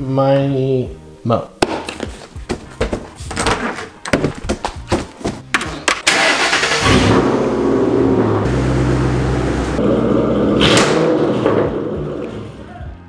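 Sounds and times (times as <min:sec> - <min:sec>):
car engine starting and revving: 0:06.0 - 0:12.6.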